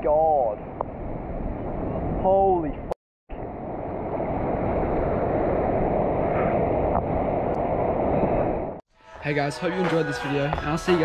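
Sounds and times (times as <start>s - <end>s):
wind buffeting microphone: 0.0s - 8.8s.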